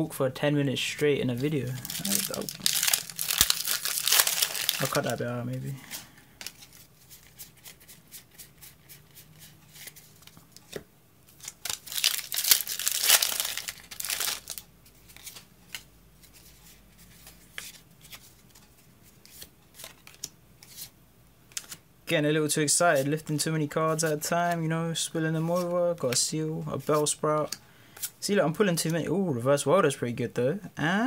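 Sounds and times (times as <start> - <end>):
foil wrapper tearing and crinkling: 1.8 - 5.2, 11.4 - 14.6
cards clicking and rustling: 1.9 - 5.2, 11.4 - 16.4, 19.3 - 20.9, 21.5 - 21.8.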